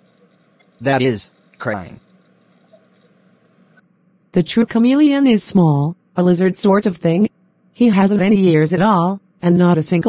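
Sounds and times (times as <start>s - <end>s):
faint steady hiss: 0.0s - 3.8s.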